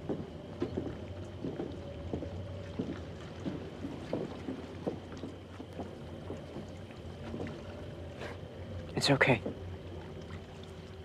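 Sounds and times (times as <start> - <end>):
soft knocks on wooden dock: 0.0 - 6.7
low steady hum: 0.0 - 11.0
water lapping: 0.0 - 11.0.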